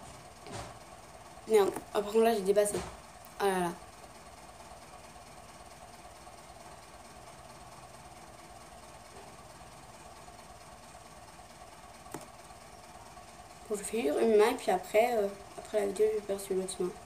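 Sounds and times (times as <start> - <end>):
background hum and hiss: 0.0 - 17.0.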